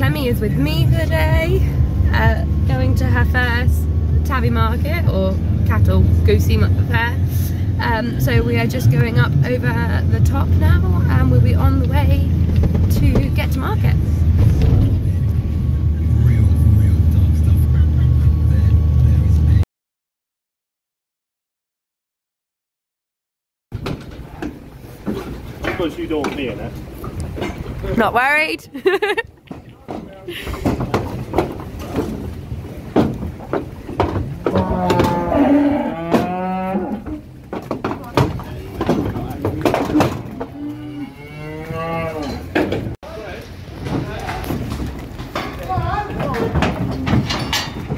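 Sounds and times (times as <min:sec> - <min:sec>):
car engine and tyre rumble: 0:00.0 - 0:19.6
bullock mooing: 0:34.4 - 0:37.4, 0:39.3 - 0:42.7.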